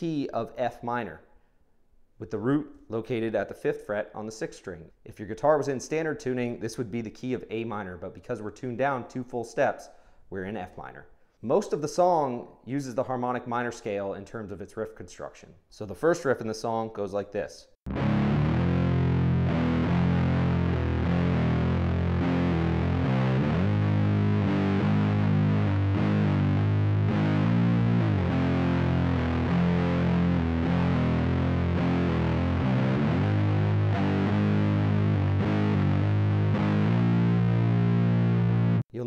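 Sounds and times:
distorted electric guitar riff: 17.9 - 38.8.

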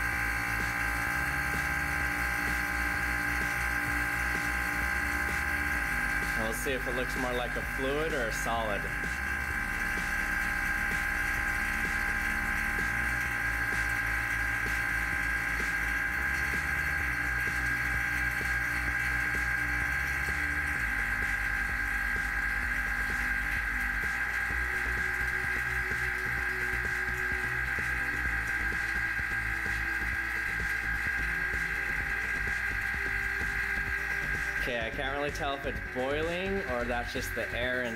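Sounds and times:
vacuum pump motor whining: 0.0 - 37.9.

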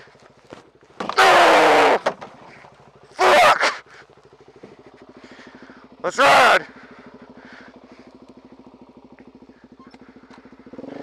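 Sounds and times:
motorcycle engine idling: 0.0 - 11.0
person yelling: 1.1 - 2.1, 3.1 - 3.9, 6.1 - 6.7.

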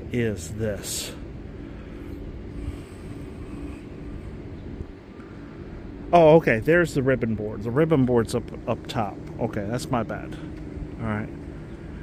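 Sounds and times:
faint even hum: 0.0 - 12.0
open-air background rumble: 0.0 - 12.0.

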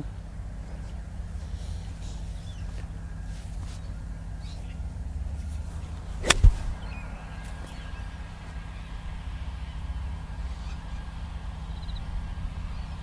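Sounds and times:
golf club striking ball: 5.4 - 7.6.

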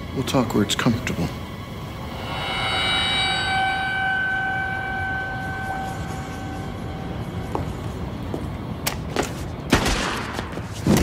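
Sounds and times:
steady held tone: 1.3 - 8.8
low rumble: 1.4 - 8.8.

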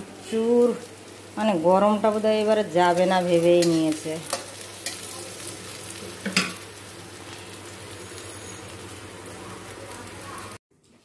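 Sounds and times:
oil sizzling in a pan: 0.0 - 10.6.

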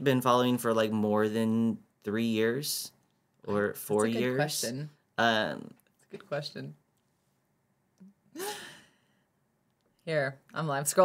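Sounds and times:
person sighing: 8.3 - 9.0.

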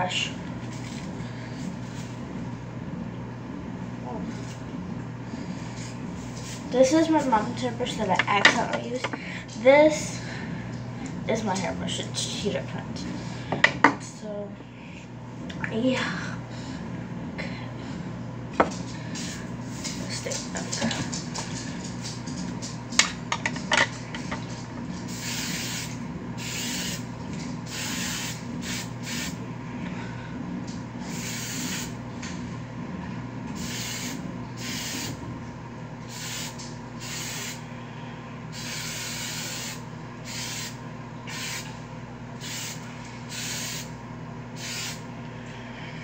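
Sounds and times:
aerosol spray hissing: 25.1 - 27.0, 27.7 - 29.4, 31.1 - 32.0, 33.6 - 35.2, 36.1 - 37.6, 38.5 - 41.7, 42.4 - 43.9, 44.6 - 45.0.

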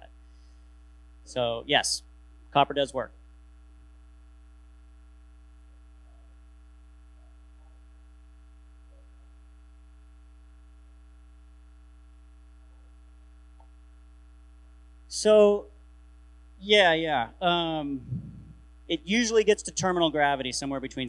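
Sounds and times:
low electrical mains hum: 0.0 - 21.0.

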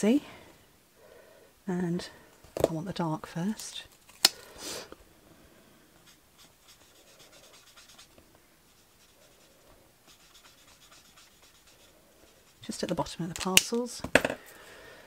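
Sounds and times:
marker rubbing on card: 6.0 - 13.0.

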